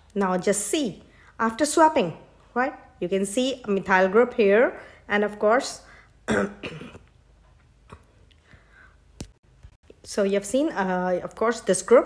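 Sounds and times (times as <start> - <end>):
woman clearing her throat: 6.3 - 7.1.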